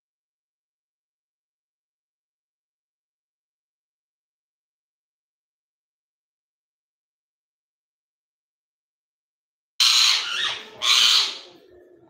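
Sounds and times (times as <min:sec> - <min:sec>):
parakeet harsh screeches: 0:09.8 - 0:11.5.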